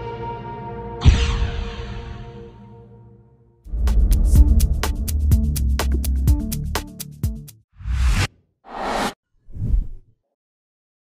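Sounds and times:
whoosh sound effects: 0:07.8 - 0:09.9.

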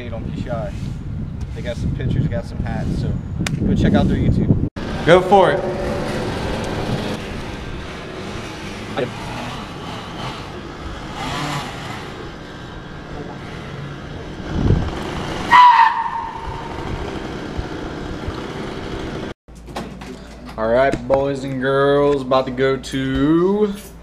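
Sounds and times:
outdoor background noise: 0:00.0 - 0:24.0
short loud squeal: 0:15.5 - 0:16.7.

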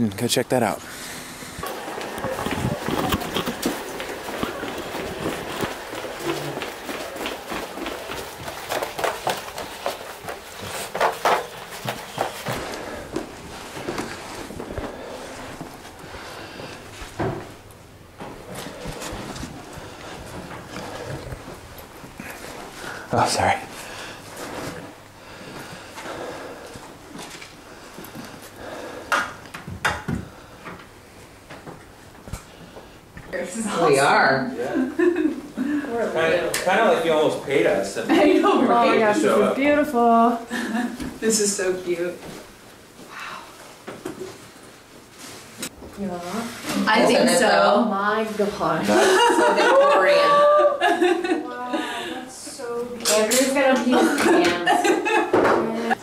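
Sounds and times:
rustling and movement: 0:01.2 - 0:28.8
footsteps on stairs: 0:01.6 - 0:23.0, 0:24.2 - 0:33.3.

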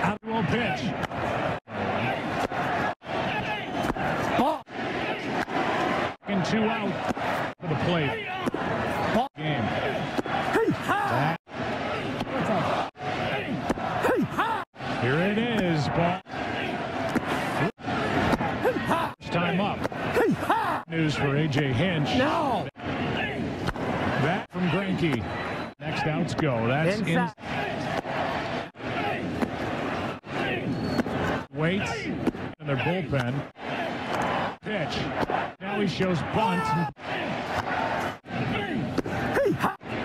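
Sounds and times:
ballpark crowd noise: 0:00.0 - 0:40.0.

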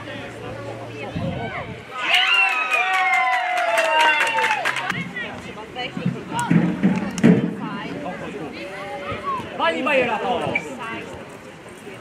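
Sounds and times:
children shouting: 0:01.4 - 0:05.0.

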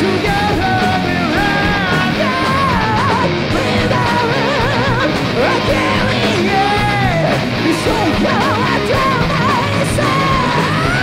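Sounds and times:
high male vocal with vibrato: 0:00.0 - 0:11.0
metal band playing: 0:00.0 - 0:11.0.

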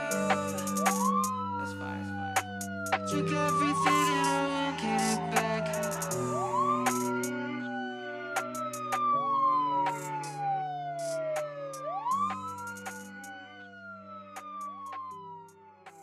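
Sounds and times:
held musical chords: 0:00.0 - 0:16.0
wailing siren: 0:00.0 - 0:16.0
sharp clicks: 0:11.8 - 0:13.1.

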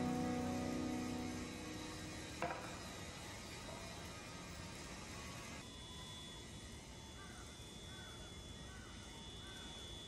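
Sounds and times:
city and construction ambience hiss: 0:00.0 - 0:10.0.

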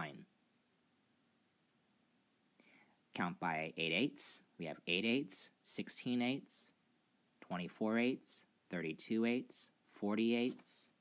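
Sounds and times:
faint soft noise: 0:00.0 - 0:11.0.

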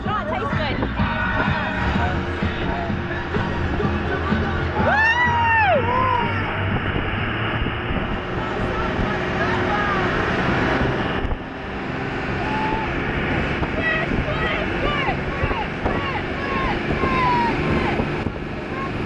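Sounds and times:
boat engines droning: 0:00.0 - 0:19.0
passenger whooping: 0:00.0 - 0:19.0
rushing wind and spray: 0:00.1 - 0:19.0
people shouting: 0:01.0 - 0:06.7, 0:12.3 - 0:13.0, 0:13.8 - 0:18.0.

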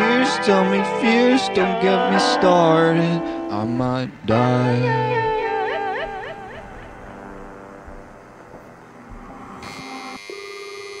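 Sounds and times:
song music: 0:00.0 - 0:10.2
electronic buzzing tone: 0:04.7 - 0:11.0.

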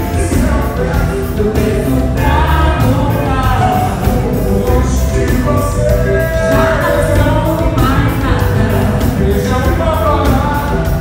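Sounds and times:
voices singing together: 0:00.0 - 0:10.7
bass: 0:00.0 - 0:11.0
drum beat: 0:00.0 - 0:11.0.

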